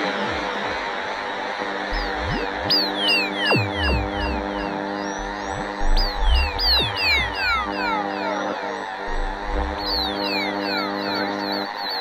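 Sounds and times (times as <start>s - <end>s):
held synth chord: 1.9s - 11.4s
repeating falling synth note: 1.9s - 11.6s.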